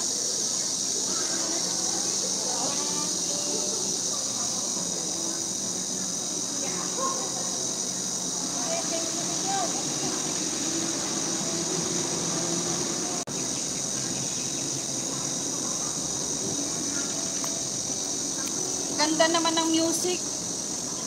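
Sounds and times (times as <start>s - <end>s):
distant traffic: 0.0s - 21.0s
distant voices murmuring: 0.0s - 21.0s
insects droning in trees: 0.0s - 21.0s.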